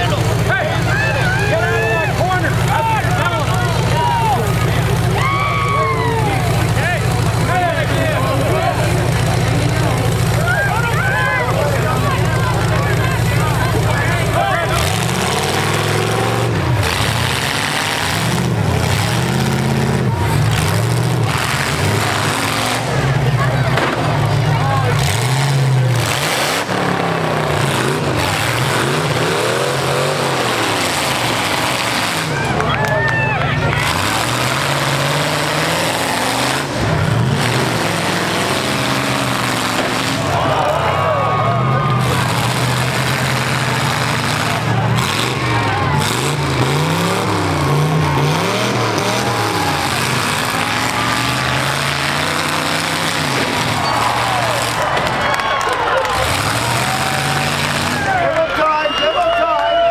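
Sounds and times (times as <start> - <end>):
truck engines revving: 0.0 - 59.9.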